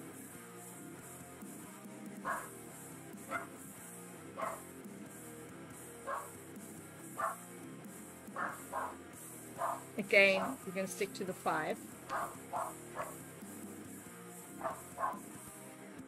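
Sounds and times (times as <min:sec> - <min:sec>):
background music: 0:00.0 - 0:16.0
dog barking: 0:02.2 - 0:02.5, 0:03.3 - 0:03.6, 0:04.4 - 0:04.7, 0:06.0 - 0:06.3, 0:07.2 - 0:07.4, 0:08.4 - 0:09.0, 0:09.6 - 0:10.6, 0:12.1 - 0:13.2, 0:14.6 - 0:15.3.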